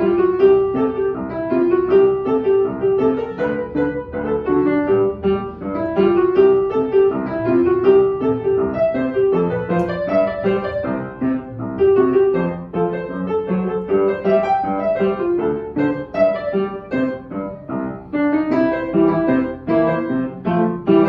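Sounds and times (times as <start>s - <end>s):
solo piano playing: 0.0s - 21.0s.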